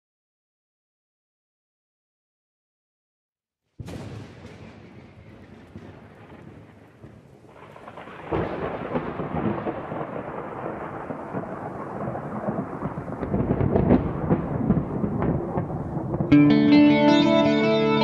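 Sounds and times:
rolling thunder rumble: 0:03.8 - 0:16.4
sharp thunderclap: 0:03.8 - 0:16.4.

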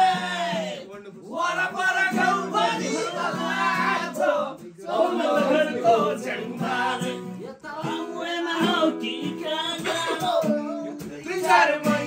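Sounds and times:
acoustic guitar: 0:00.0 - 0:12.0
men singing in chorus: 0:01.3 - 0:12.0.

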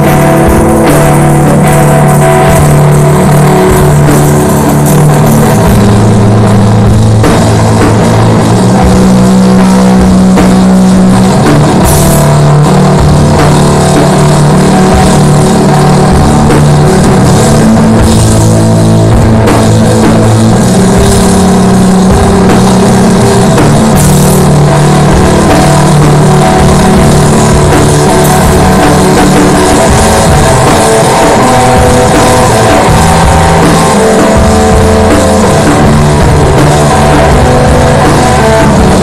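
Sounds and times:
drums and cymbals: 0:00.0 - 0:39.0
electric guitar droning: 0:00.0 - 0:39.0.

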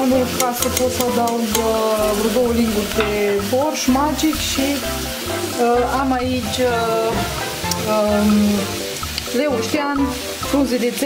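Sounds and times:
background music: 0:00.0 - 0:11.0
vegetables sizzling in a pan: 0:00.0 - 0:11.0.

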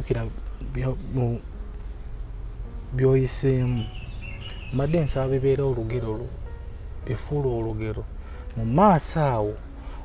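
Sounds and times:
man speaking: 0:00.0 - 0:01.4, 0:02.9 - 0:03.9, 0:04.7 - 0:06.3, 0:07.0 - 0:09.6
low buzzing hum: 0:00.0 - 0:10.0.

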